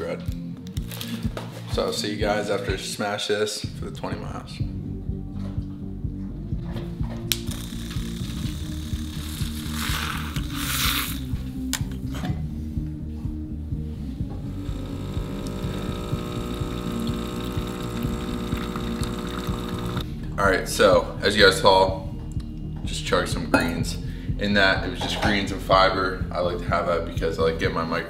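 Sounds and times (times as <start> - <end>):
background music: 0.0 - 28.0
espresso machine humming: 7.5 - 10.0, 14.5 - 20.0.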